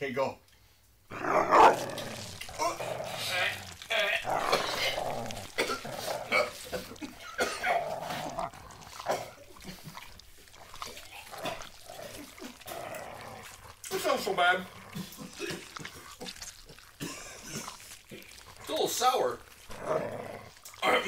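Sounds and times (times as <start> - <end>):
man gagging and retching: 1.1 - 21.0.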